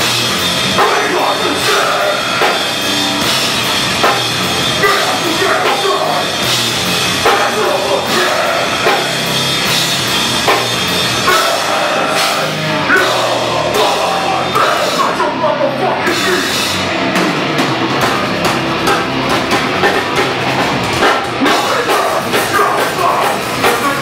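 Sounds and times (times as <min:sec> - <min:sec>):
electric guitars: 0:00.0 - 0:24.0
heavy rock band playing: 0:00.0 - 0:24.0
pounding drum kit: 0:00.0 - 0:24.0
person singing into a microphone: 0:00.8 - 0:02.4, 0:07.2 - 0:09.1, 0:11.3 - 0:16.6, 0:21.4 - 0:24.0.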